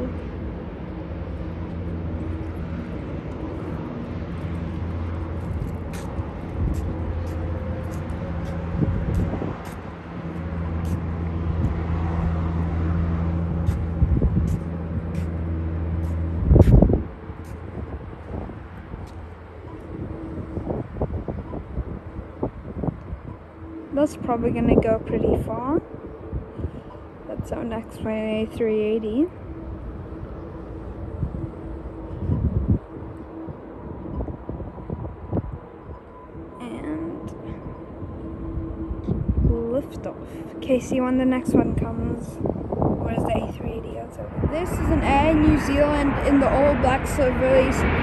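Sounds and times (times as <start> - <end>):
low engine drone: 0.0 - 48.0.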